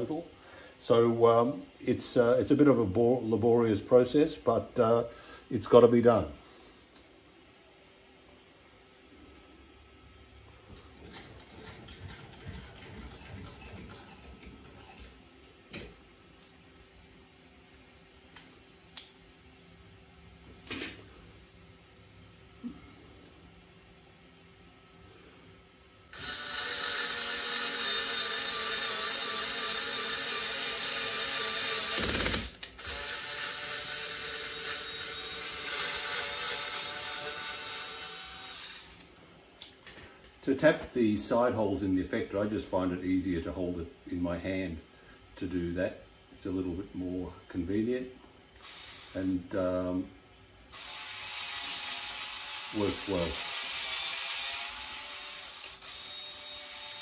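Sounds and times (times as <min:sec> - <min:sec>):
cordless screwdriver motor whine: 0:26.1 - 0:39.1, 0:48.6 - 0:49.3, 0:50.7 - 0:57.0.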